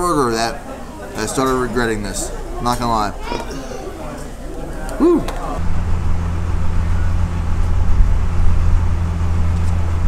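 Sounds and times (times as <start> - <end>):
man shouting woo: 5.0 - 5.4
road traffic hum: 5.3 - 10.0.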